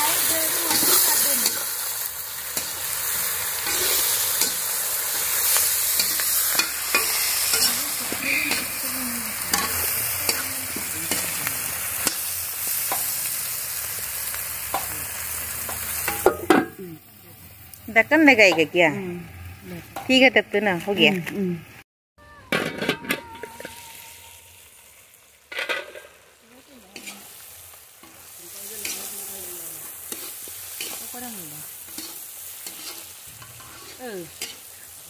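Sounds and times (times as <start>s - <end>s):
food sizzling in a wok: 0.0s - 22.4s, 23.2s - 35.0s
spatula scraping and clicking on pan: 3.6s - 4.6s, 5.2s - 8.6s, 30.0s - 31.2s, 31.8s - 34.7s
metal lid clatter: 25.5s - 26.2s.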